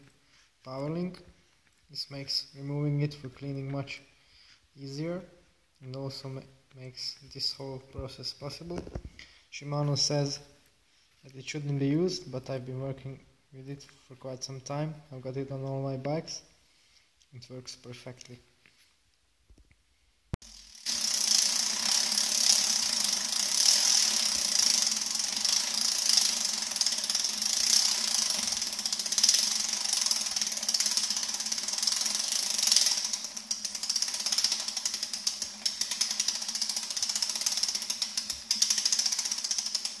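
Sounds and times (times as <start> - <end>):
bicycle chain whirring: 20.4 - 40.0.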